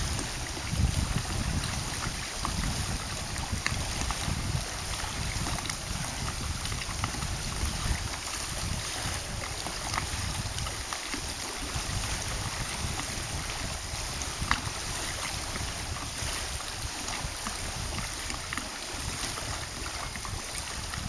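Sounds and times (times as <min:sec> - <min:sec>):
small waves lapping: 0:00.0 - 0:21.0
wind on microphone: 0:00.0 - 0:21.0.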